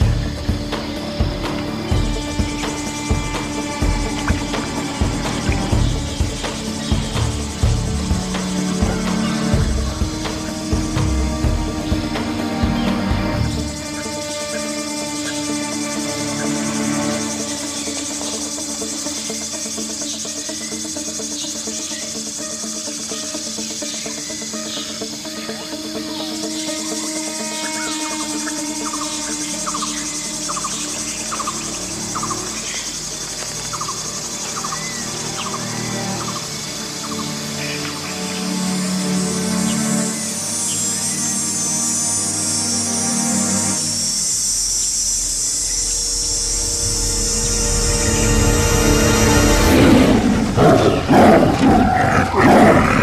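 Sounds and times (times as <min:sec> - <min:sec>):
insect drone: 0:00.0 - 0:53.0
low sustained music: 0:00.0 - 0:53.0.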